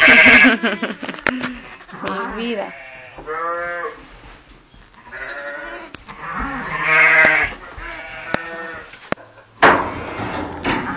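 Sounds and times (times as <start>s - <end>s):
sheep bleating: 0.0s - 4.0s, 5.1s - 8.9s
sharp knocks: 9.6s - 10.9s.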